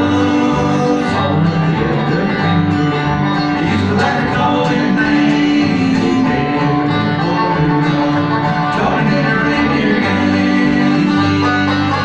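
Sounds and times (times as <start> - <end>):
banjo picking: 0.0 - 12.0
bluegrass band playing: 0.0 - 12.0
upright bass plucking: 0.0 - 12.0.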